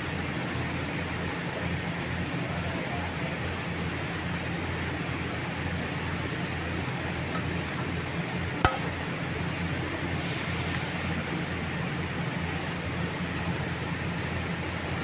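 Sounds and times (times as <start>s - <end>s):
steady background hum: 0.0s - 15.0s
metal clink on engine: 6.5s - 7.9s, 11.8s - 12.1s, 13.1s - 14.2s.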